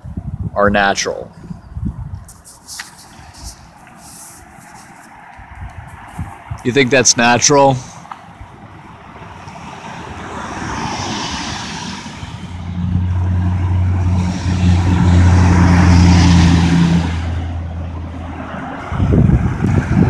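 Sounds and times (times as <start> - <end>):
passing vehicle rushing: 2.7 - 20.0
low engine hum: 11.9 - 20.0.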